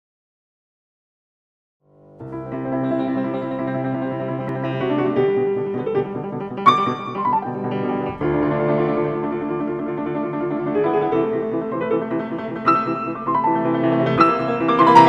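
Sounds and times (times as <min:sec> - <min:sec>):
solo piano playing slow chords: 0:01.9 - 0:15.0.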